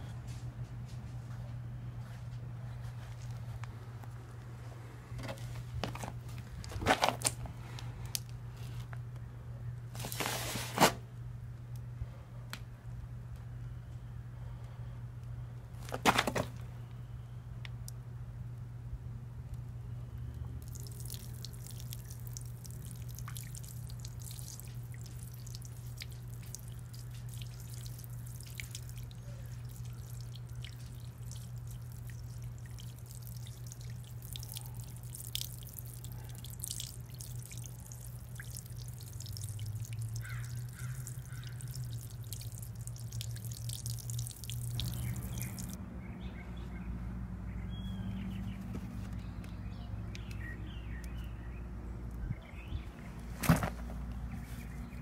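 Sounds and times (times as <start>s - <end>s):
steady low hum: 0.0s - 10.2s, 10.9s - 55.0s
water splashing and dripping on dirt: 20.6s - 45.8s.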